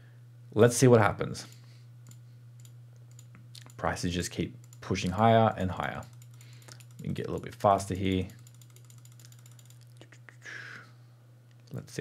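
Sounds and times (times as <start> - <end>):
low steady hum: 0.0 - 12.0
short breath: 10.4 - 11.0.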